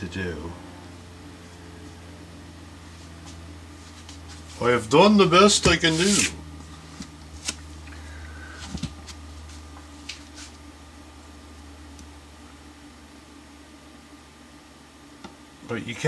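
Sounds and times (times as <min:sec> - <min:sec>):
electric fan humming: 0:00.0 - 0:16.0.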